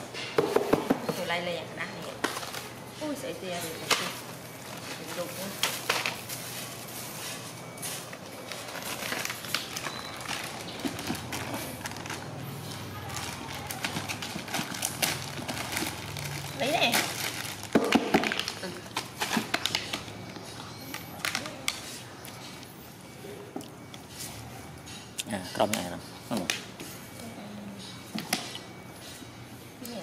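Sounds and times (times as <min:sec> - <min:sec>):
plastic bag crinkling: 0:02.1 - 0:22.0.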